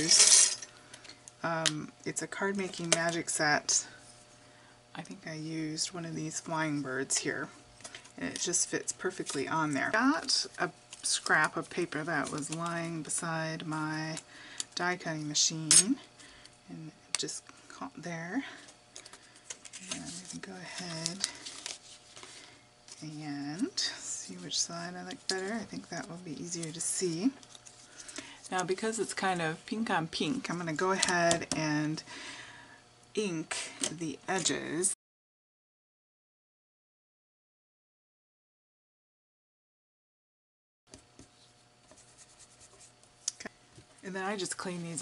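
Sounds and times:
paper rustling: 19.1s - 23.0s.

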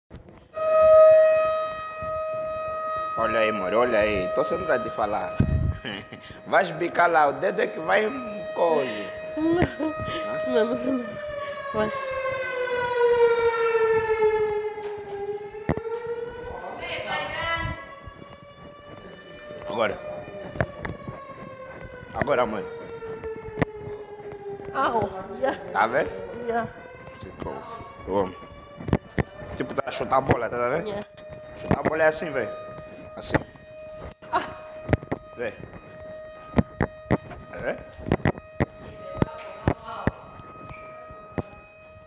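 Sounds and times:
electronic alarm siren: 0.2s - 42.0s.

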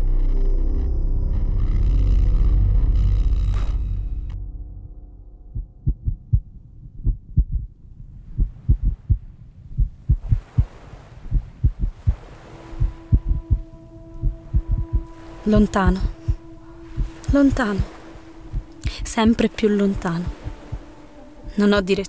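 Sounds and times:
held low tone: 0.0s - 10.4s, 11.3s - 22.0s
heartbeat thumps: 5.5s - 19.4s, 20.3s - 21.6s.

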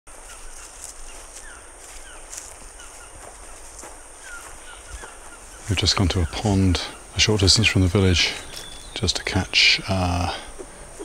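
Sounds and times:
falling bird chirps: 0.2s - 11.0s.

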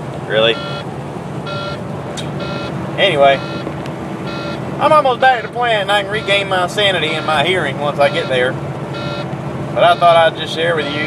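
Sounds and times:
truck engine rumbling: 0.0s - 11.0s
dashboard warning buzzer beeps: 0.5s - 1.8s, 2.4s - 2.8s, 3.4s - 4.6s, 6.1s - 10.2s.

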